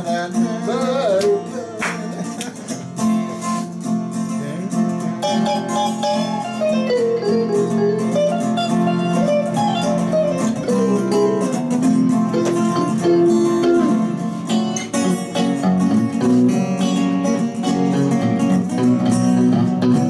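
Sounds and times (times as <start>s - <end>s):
acoustic-electric guitar strumming: 0.0s - 20.0s
lead guitar melody: 0.0s - 20.0s.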